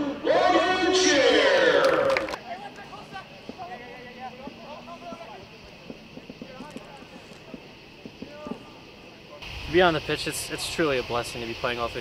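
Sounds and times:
players shouting: 0.0s - 3.4s.

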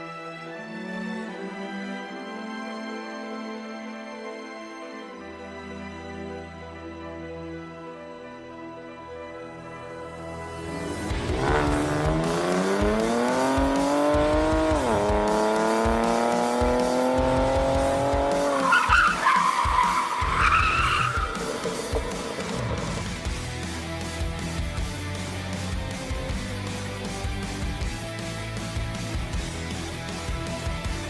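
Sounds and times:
car engine revving: 10.3s - 23.7s
tires squealing: 10.6s - 23.2s.

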